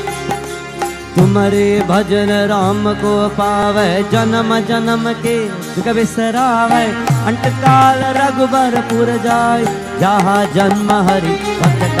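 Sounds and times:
harmonium drone: 0.0s - 12.0s
percussion strokes: 0.0s - 12.0s
man singing devotional chant: 0.8s - 12.0s.

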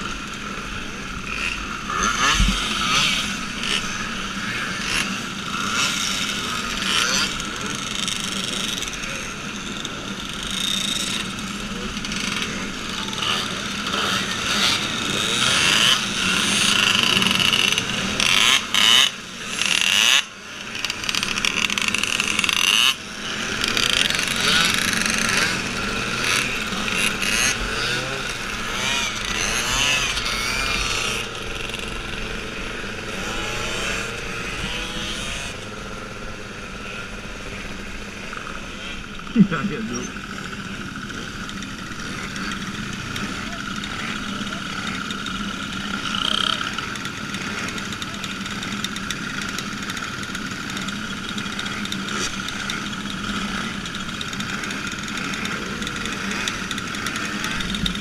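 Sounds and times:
moped engines revving: 0.0s - 58.0s.

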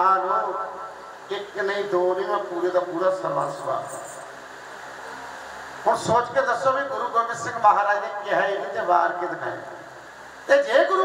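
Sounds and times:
man's amplified speech: 0.0s - 4.3s, 5.8s - 9.8s, 10.5s - 11.0s
sound system hiss: 0.0s - 11.0s.

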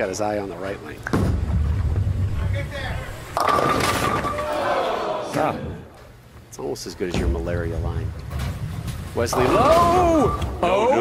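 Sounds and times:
bowling ball rolling: 1.0s - 4.6s
bowling pins crashing: 3.3s - 4.6s.

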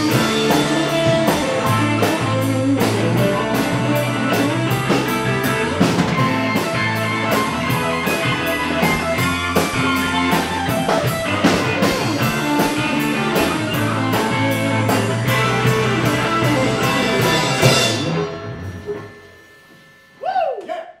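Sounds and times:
drum kit beat: 0.0s - 19.2s
electric guitar: 0.0s - 20.6s.

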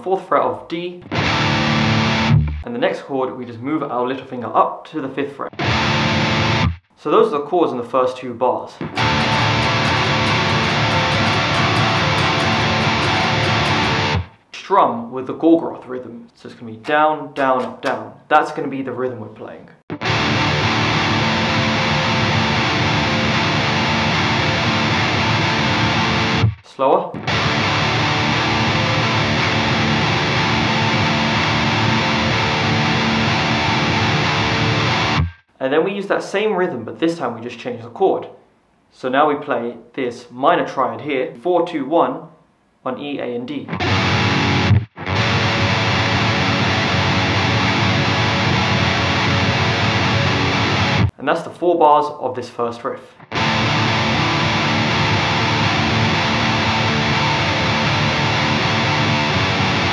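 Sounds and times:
distorted electric guitar riff: 1.0s - 2.6s, 5.5s - 6.9s, 8.8s - 14.4s, 19.9s - 26.6s, 27.2s - 35.4s, 43.7s - 51.1s, 53.2s - 59.9s.

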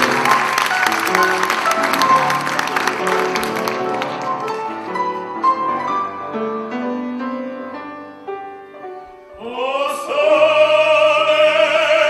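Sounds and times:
grand piano melody: 0.0s - 11.3s.

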